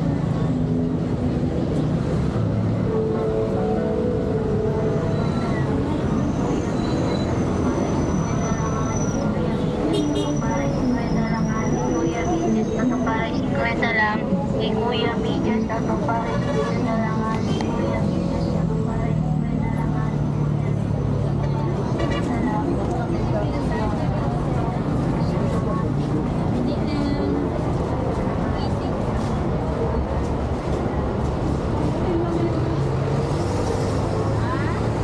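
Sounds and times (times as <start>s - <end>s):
steady traffic noise: 0.0s - 35.0s.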